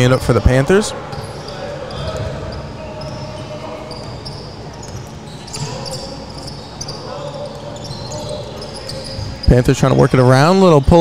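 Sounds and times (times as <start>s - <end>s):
sneakers squeaking on court: 0.0s - 11.0s
basketball bouncing on wooden floor: 1.9s - 2.6s.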